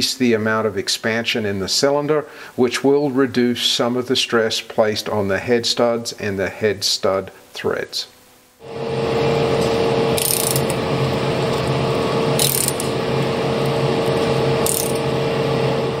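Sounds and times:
steady machine hum: 0:08.5 - 0:16.0
mechanical clatter of gears: 0:10.2 - 0:10.8, 0:12.4 - 0:12.9, 0:14.6 - 0:15.0.

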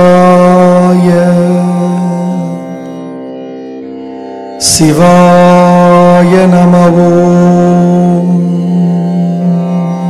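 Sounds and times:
steady drone: 0:00.0 - 0:10.0
loud long held tone: 0:04.6 - 0:10.0.

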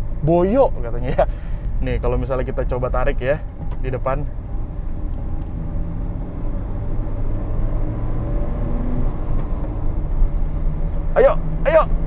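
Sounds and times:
road noise inside car: 0:00.0 - 0:12.0
car engine accelerating: 0:01.7 - 0:12.0.

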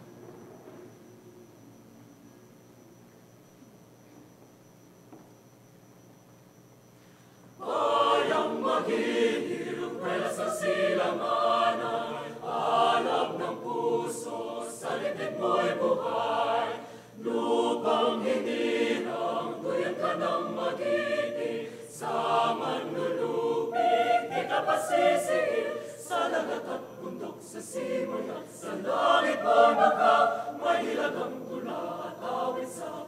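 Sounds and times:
choir breaths: 0:07.0 - 0:33.0
mixed choir singing: 0:07.6 - 0:33.0.

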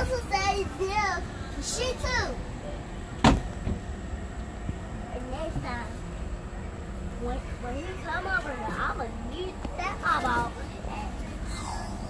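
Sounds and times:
loud short thump: 0:03.2 - 0:03.8.

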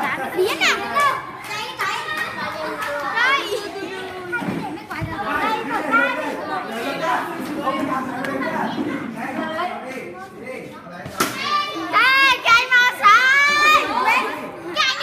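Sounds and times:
children shouting and laughing: 0:00.0 - 0:10.0, 0:11.2 - 0:15.0.

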